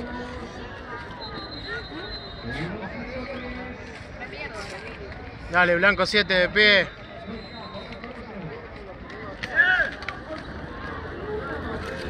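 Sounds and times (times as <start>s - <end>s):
distant people calling and talking: 0.0s - 12.0s
outdoor background noise: 0.0s - 12.0s.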